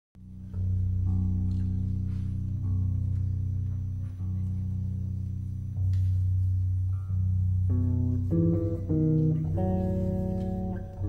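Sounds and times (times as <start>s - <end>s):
double bass long low notes: 0.2s - 11.0s.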